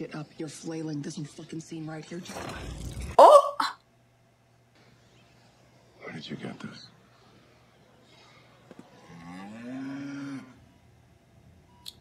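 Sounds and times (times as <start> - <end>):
cow mooing: 9.0 - 10.6.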